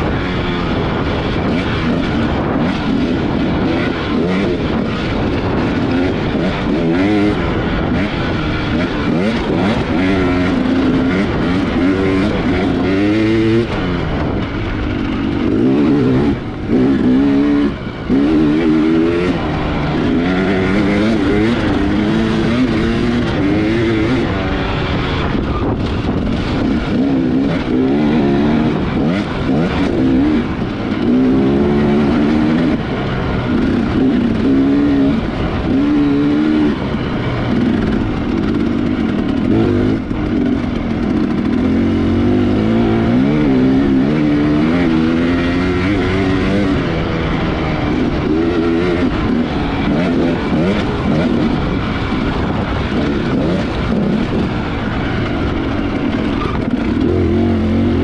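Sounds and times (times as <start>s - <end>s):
motorcycle engine revving: 0.0s - 58.0s.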